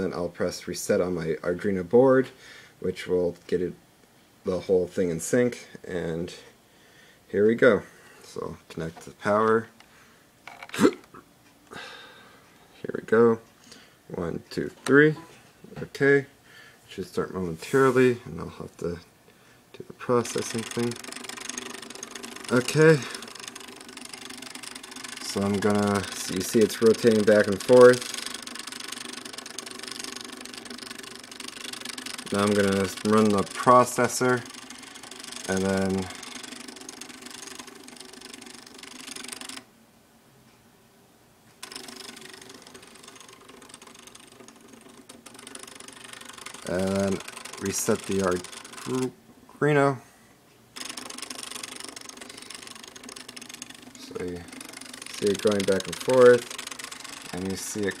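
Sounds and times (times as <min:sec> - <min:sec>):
stepper motor pulsing hum: 0:20.0 - 0:39.7, 0:41.6 - 0:49.2, 0:50.7 - 0:58.0.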